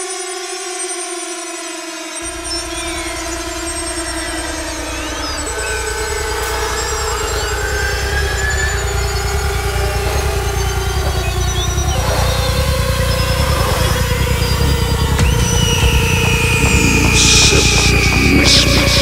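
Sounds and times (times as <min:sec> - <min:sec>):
synthesizer drones: 0:00.0 - 0:19.0
sweeping synth effects: 0:02.0 - 0:19.0
fast pulsing bass line: 0:02.2 - 0:19.0.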